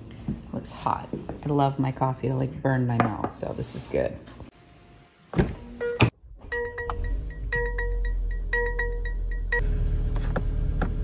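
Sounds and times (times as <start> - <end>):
music: 5.6 - 9.6
car engine starting and running: 6.2 - 11.0.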